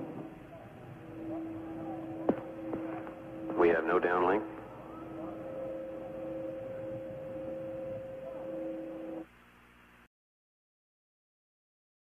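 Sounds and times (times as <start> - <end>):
two steady hum tones: 0.0 - 10.1.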